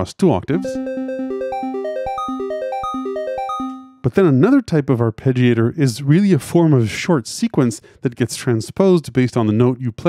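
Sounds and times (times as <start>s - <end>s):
fast synth piano arpeggio: 0.6s - 4.1s.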